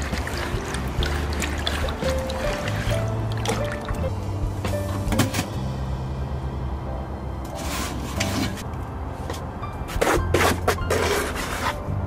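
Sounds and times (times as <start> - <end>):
water sloshing in a bucket: 0.0 - 4.1
background music: 0.0 - 12.0.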